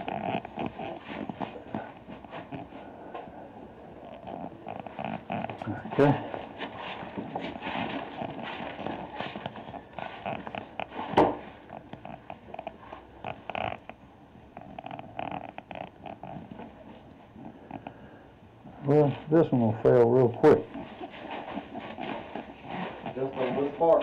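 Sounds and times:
rustling and handling noise: 0.0 - 24.0
scuffing footsteps: 20.6 - 24.0.

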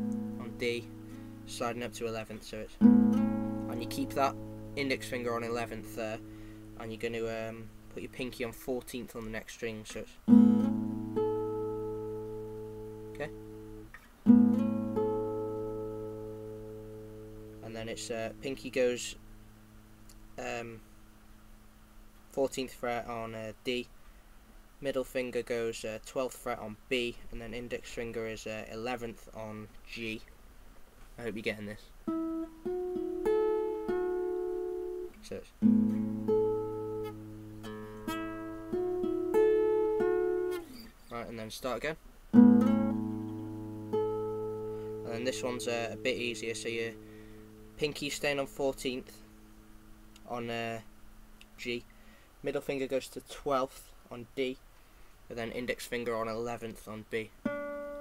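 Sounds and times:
acoustic guitar chord ringing: 0.0 - 8.7, 10.2 - 20.1, 32.1 - 40.9, 42.3 - 50.2, 57.4 - 58.0.

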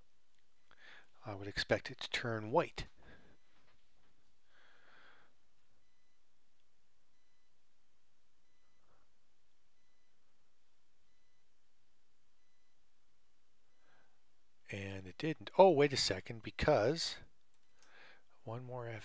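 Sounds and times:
faint high beep: 5.7 - 6.3, 7.1 - 7.7, 8.4 - 11.6, 12.4 - 13.0.

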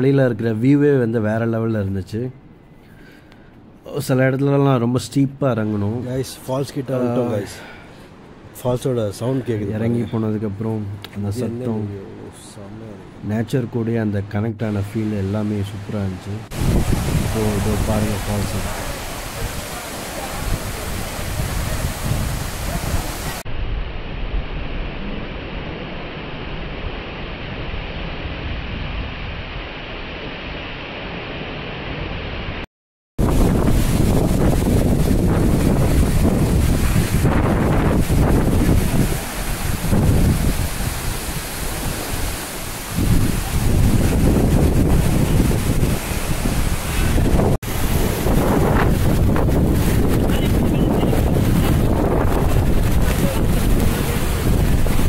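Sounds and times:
waterfall roaring into pool: 14.8 - 32.6, 33.2 - 55.0
wind buffeting microphone: 16.3 - 23.4, 33.2 - 55.0.

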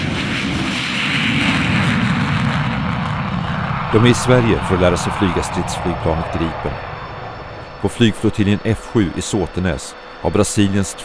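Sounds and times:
fighter jets taking off: 0.0 - 11.0.

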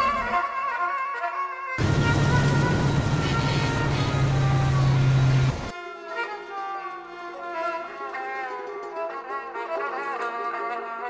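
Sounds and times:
jet engine rushing: 1.8 - 5.7
string music: 1.8 - 11.0.

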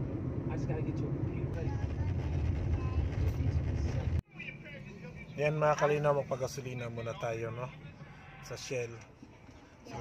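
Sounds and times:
car cabin road rumble: 0.0 - 6.1.

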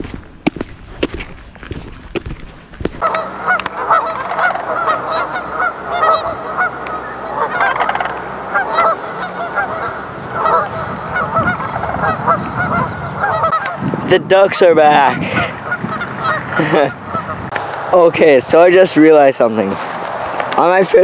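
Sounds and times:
geese honking: 3.0 - 17.7.

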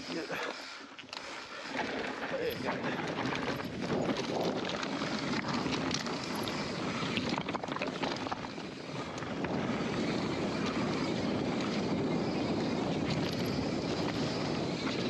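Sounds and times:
bike clicks and rattles: 0.0 - 15.0
tyres rolling over dirt and stones: 1.6 - 9.8
wind rushing on microphone: 1.8 - 15.0.

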